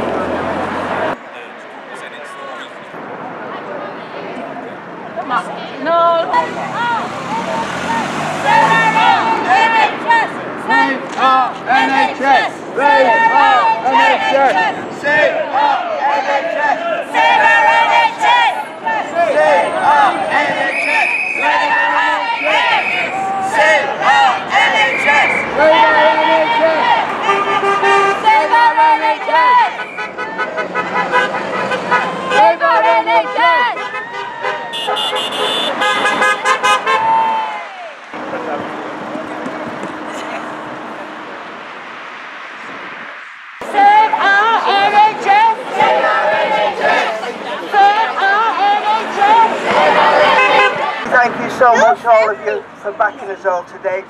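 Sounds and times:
crowd voices: 0.0 - 54.0
vehicle passing close by: 5.4 - 15.0, 17.2 - 51.9
car horns honking: 19.4 - 37.4, 47.7 - 52.4.

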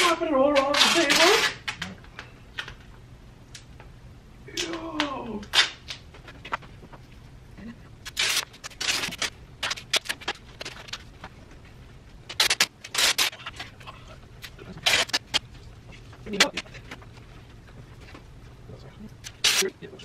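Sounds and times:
duct tape ripping off roll: 0.5 - 1.9, 4.5 - 6.0, 8.0 - 11.0, 12.3 - 13.7, 14.8 - 15.4, 19.2 - 19.7.

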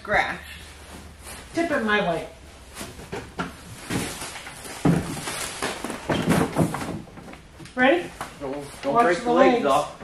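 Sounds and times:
box falling with a thump: 2.8 - 7.2
cardboard knocking and scraping: 2.8 - 7.5.

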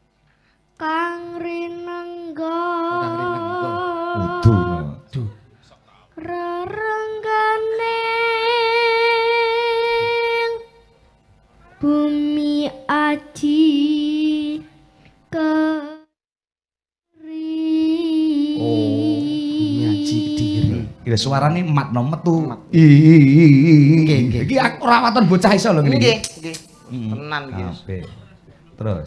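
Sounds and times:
boy singing solo: 0.8 - 5.0, 17.2 - 21.0.

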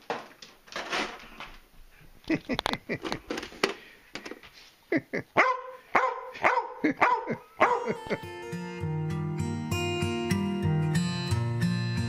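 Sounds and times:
dog barking: 5.4 - 8.0
acoustic guitar music: 7.3 - 12.0.

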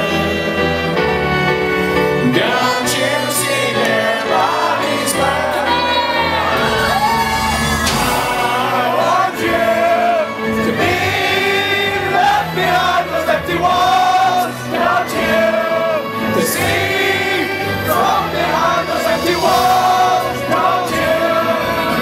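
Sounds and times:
band and orchestra playing: 0.0 - 22.0
singer holding long notes: 2.2 - 22.0.

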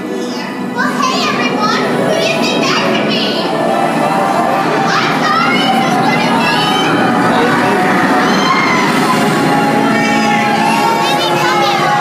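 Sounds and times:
children calling out: 0.0 - 12.0
music: 0.0 - 12.0.

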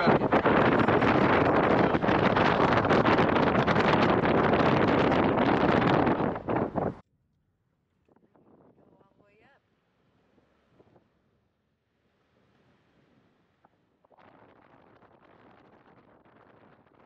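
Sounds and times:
wind noise on microphone: 0.0 - 7.0, 8.1 - 9.5, 10.2 - 11.2, 12.4 - 17.0.

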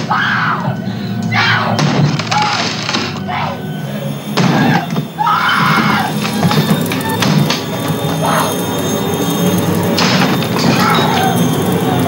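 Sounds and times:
film music with low drone: 0.0 - 12.0
wooden door splitting: 1.8 - 3.2.

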